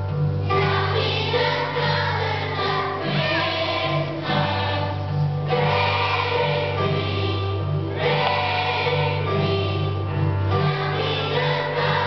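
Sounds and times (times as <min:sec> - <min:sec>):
low instrumental accompaniment: 0:00.0 - 0:12.0
children's choir singing: 0:00.4 - 0:12.0.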